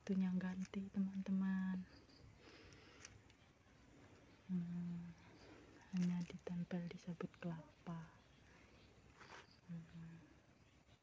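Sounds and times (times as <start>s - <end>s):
soft hiss: 0.0s - 11.0s
person humming: 4.5s - 5.1s.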